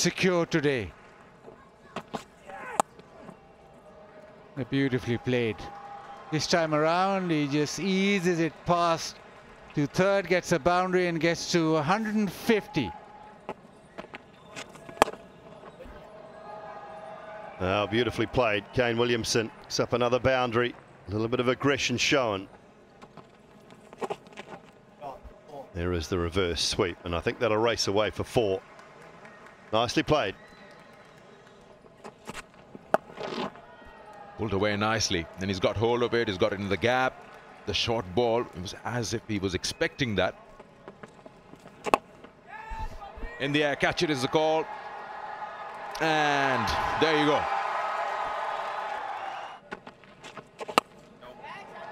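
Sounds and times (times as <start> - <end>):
stadium ambience: 0.0 - 51.9
cricket bat hitting ball: 14.8 - 15.2, 41.8 - 42.1.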